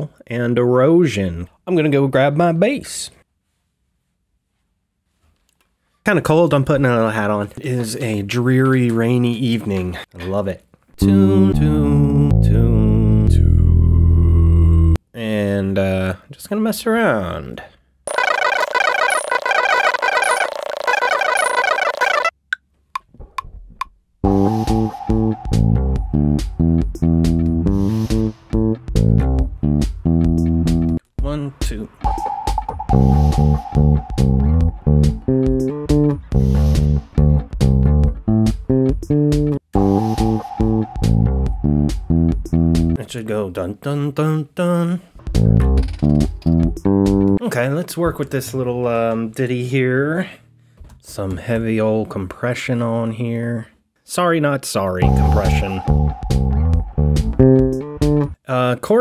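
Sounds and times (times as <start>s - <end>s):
bright busy musical loop: 18.1s - 22.3s, 32.1s - 36.1s, 39.8s - 43.0s, 55.0s - 58.3s
ticking backing loop: 18.1s - 22.3s, 24.3s - 31.0s, 32.0s - 37.8s, 38.8s - 43.0s, 55.0s - 58.4s
electric bass guitar riff: 24.3s - 31.0s, 32.9s - 43.0s, 55.0s - 58.4s.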